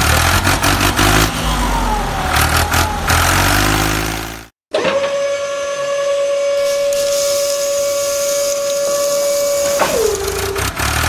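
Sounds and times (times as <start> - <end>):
small electric motor whining: 6.2 - 10.9
sand sliding hiss: 6.6 - 10.6.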